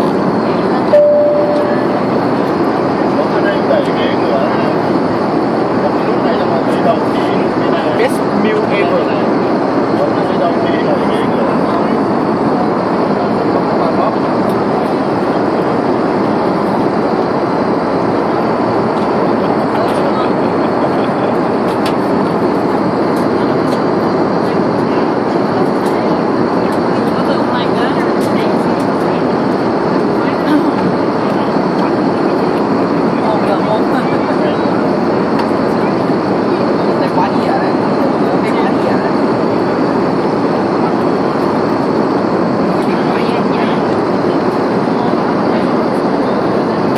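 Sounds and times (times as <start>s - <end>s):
airliner cabin engine rush: 0.0s - 46.9s.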